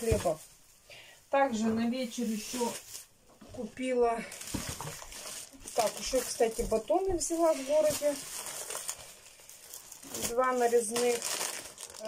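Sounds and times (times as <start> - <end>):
plastic packaging crinkling: 3.8 - 12.0.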